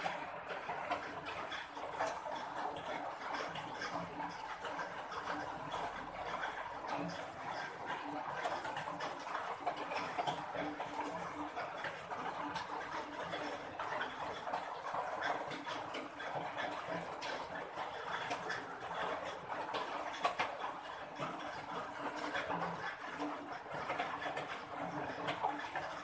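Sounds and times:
cat chewing and lapping: 0.0s - 26.0s.

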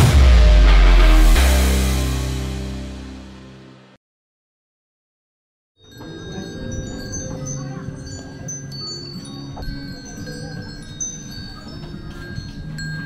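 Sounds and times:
tubular wind chime ringing: 5.8s - 13.0s.

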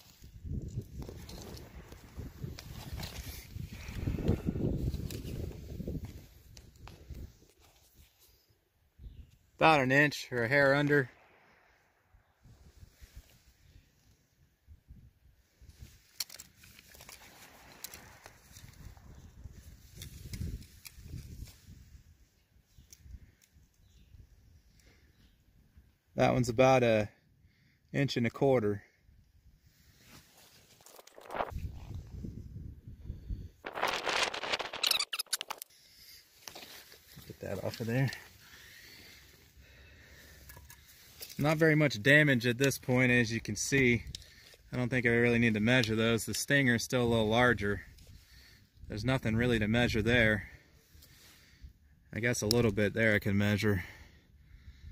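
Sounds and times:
light handling clicks and rustles: 15.7s - 21.7s, 40.2s - 41.6s, 43.6s - 44.7s.

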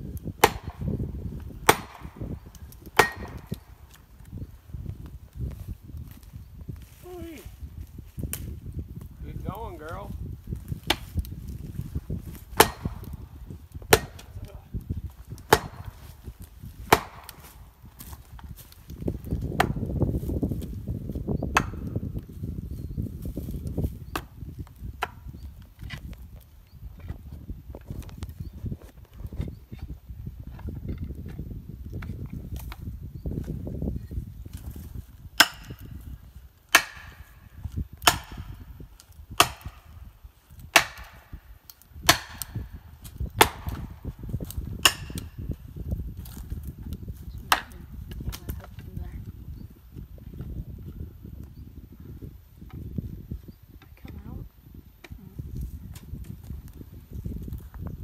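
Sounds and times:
hatchet chopping tree trunk: 0.1s - 7.0s, 10.4s - 22.3s, 23.2s - 26.4s, 34.5s - 48.6s.

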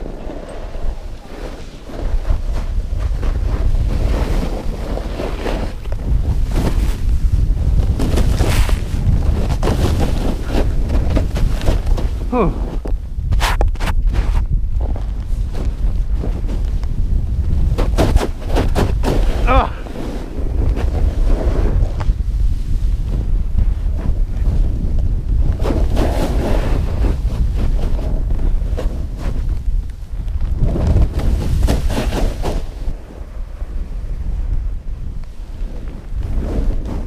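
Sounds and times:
snow spraying under snowboard: 0.0s - 12.8s, 15.3s - 29.8s, 30.5s - 34.8s, 35.4s - 37.0s
wind buffeting microphone: 0.0s - 37.0s.

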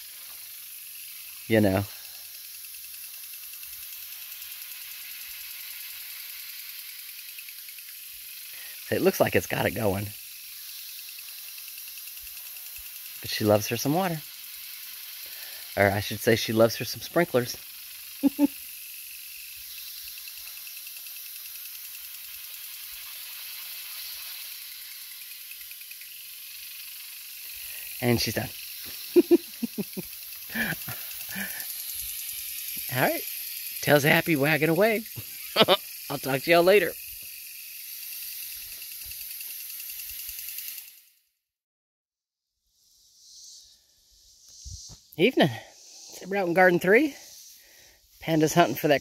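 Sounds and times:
sprinkler spraying water: 0.0s - 41.2s, 44.6s - 49.0s.

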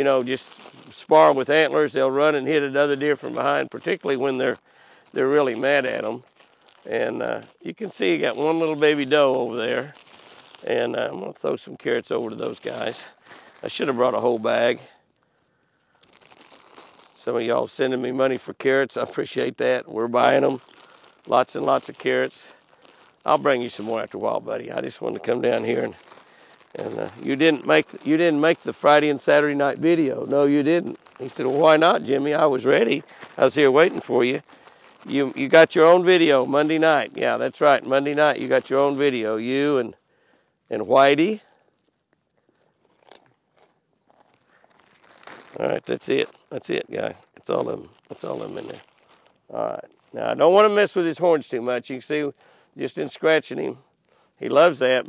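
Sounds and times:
plastic bag crinkling: 0.0s - 15.2s, 15.8s - 17.3s, 19.9s - 40.0s, 40.8s - 50.7s
deer chewing carrots: 42.8s - 44.4s.

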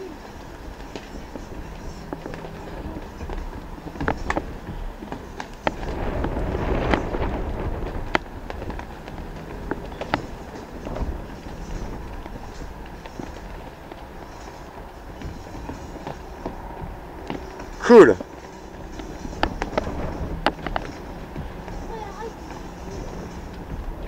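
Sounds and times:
shoes stamping on wooden deck: 0.2s - 24.0s.

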